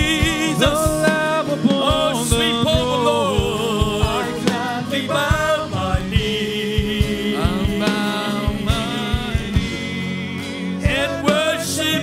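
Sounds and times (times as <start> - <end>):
backing singers: 0.0 - 12.0
electric bass and guitar: 0.0 - 12.0
man singing lead vocal: 0.0 - 12.0
steady low drum beat: 0.0 - 12.0.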